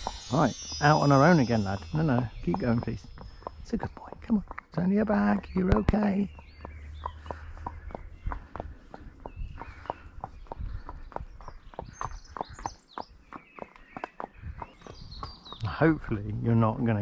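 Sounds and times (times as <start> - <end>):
horse hooves on tarmac: 0.0 - 17.0.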